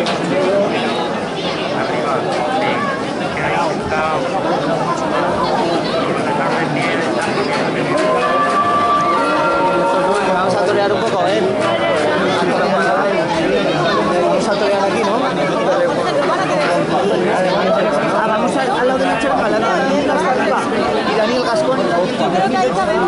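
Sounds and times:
crowd chattering: 0:00.0 - 0:23.0.

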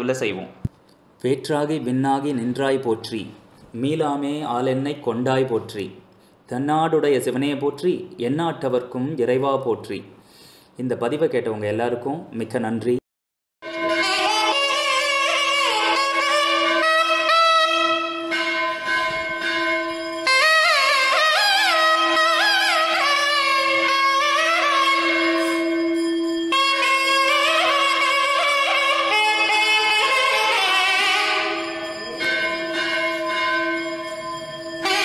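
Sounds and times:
bell ringing in pulses: 0:13.6 - 0:35.0
double-reed wind instrument note: 0:13.6 - 0:35.0
low drone: 0:30.4 - 0:35.0.

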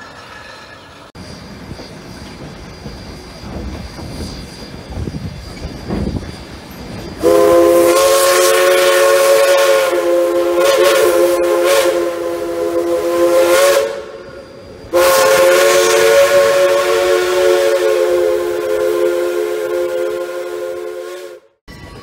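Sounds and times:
steam locomotive chime whistle: 0:04.1 - 0:22.0.

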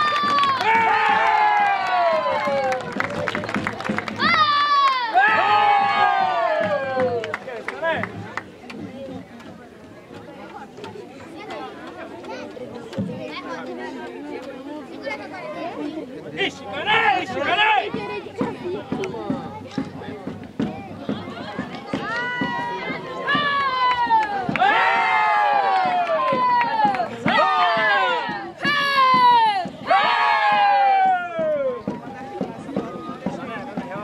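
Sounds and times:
crowd chatter: 0:00.0 - 0:34.0.

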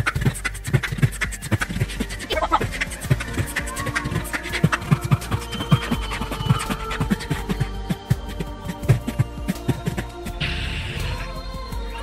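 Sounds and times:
beatboxing into a microphone: 0:00.0 - 0:04.8.

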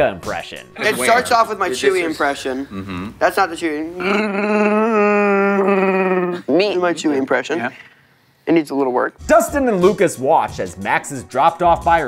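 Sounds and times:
person howling vocal impression: 0:04.0 - 0:06.5.

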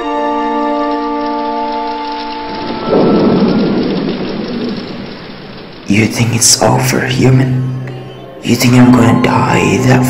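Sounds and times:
steady rain: 0:00.0 - 0:10.0
sustained music chords: 0:00.0 - 0:10.0
loud thunderclap: 0:02.5 - 0:07.8.

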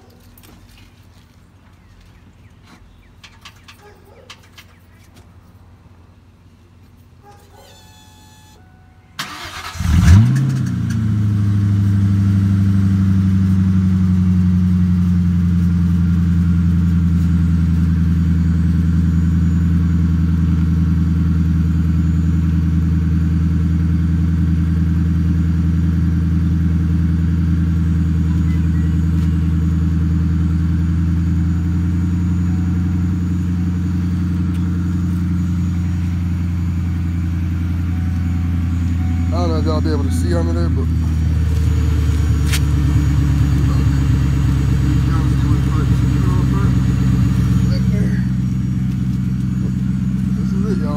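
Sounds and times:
loud engine idling: 0:09.2 - 0:50.9.

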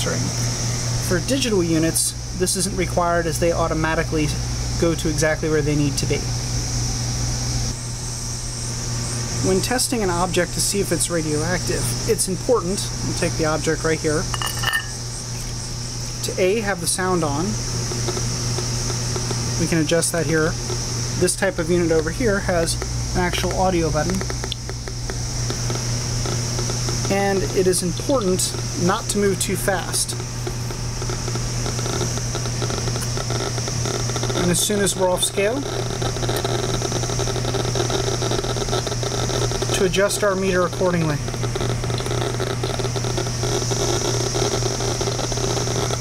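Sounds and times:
steady low hum: 0:00.0 - 0:46.0
geiger counter clicking: 0:17.2 - 0:46.0.

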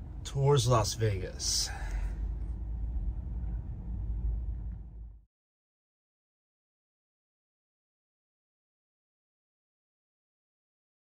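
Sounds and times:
low rumble inside car cabin: 0:00.0 - 0:05.3.

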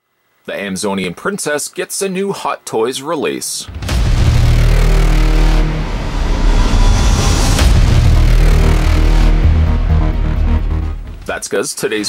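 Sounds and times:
rumbling whoosh with heavy bass: 0:03.8 - 0:11.2.

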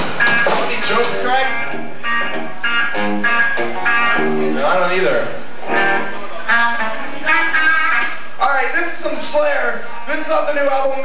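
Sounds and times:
electric guitar picking single notes: 0:00.0 - 0:08.4.

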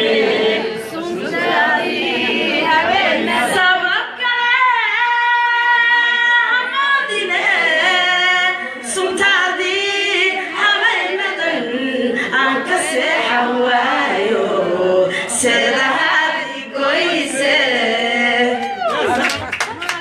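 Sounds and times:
group of voices singing: 0:00.0 - 0:19.2.

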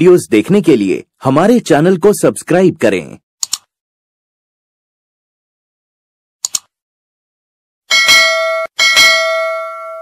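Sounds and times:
notification bell dings: 0:07.9 - 0:10.0.

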